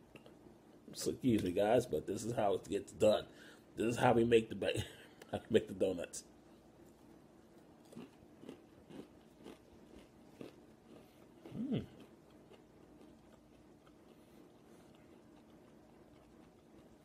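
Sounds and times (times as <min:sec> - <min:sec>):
crunching and chewing granola: 0:07.5 - 0:17.0
short voiced hum: 0:11.5 - 0:12.0.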